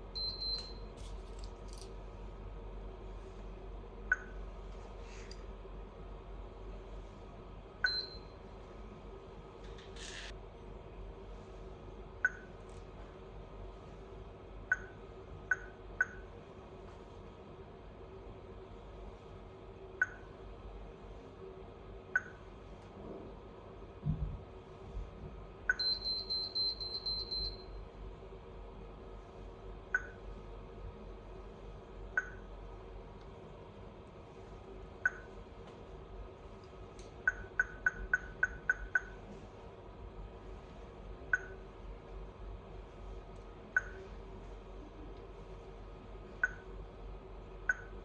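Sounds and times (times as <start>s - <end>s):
intercom buzzer beeping: 25.7s - 27.7s.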